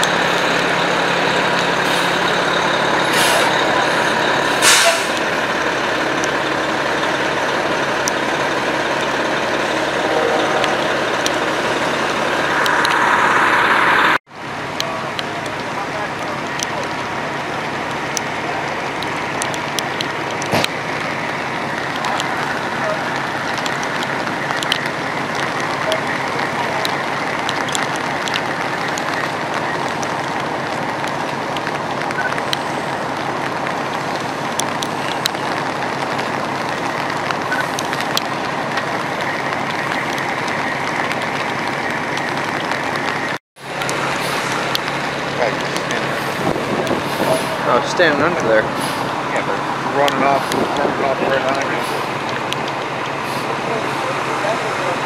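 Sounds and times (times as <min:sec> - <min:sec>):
fire crackling: 0:00.0 - 0:55.0
fire rumbling and hissing: 0:00.0 - 0:55.0.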